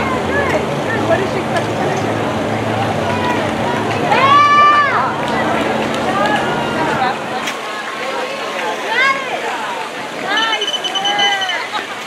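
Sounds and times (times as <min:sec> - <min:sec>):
background chatter: 0:00.0 - 0:12.0
spectator cheering call: 0:04.1 - 0:05.2, 0:10.3 - 0:11.9.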